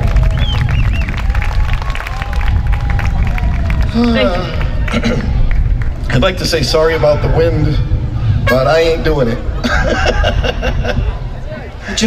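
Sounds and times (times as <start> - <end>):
audience applauding: 0.0 - 6.1
wind rumble on microphone: 0.0 - 12.0.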